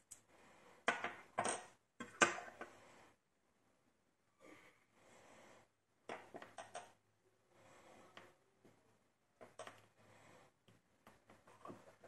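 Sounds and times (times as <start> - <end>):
soft handling noise: 10.7 - 12.0.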